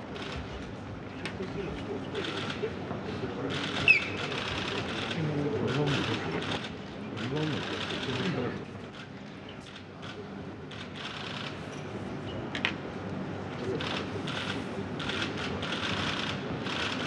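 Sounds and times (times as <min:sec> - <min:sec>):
murmur of voices: 0:00.0 - 0:17.0
rapid mechanical clicking: 0:13.8 - 0:17.0.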